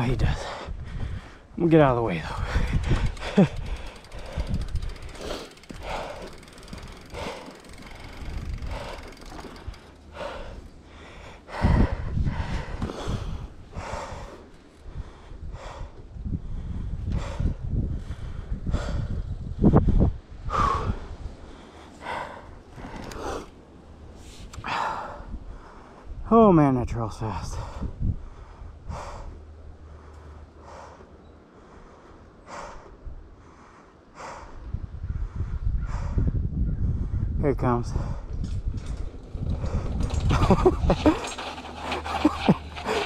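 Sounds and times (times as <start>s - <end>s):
microphone wind rumble: 0.0s - 26.3s, 27.2s - 30.0s, 34.2s - 43.0s
person breathing hard: 0.3s - 1.6s, 2.2s - 23.6s, 27.6s - 37.2s.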